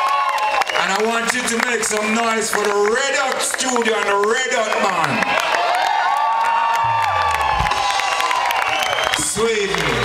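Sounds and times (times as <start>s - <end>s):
audience cheering and clapping: 0.0s - 10.0s
live band playing: 6.5s - 10.0s.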